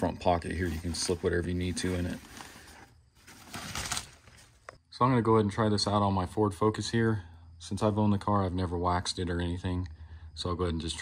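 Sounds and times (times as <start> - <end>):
fabric rustling: 0.6 - 4.7.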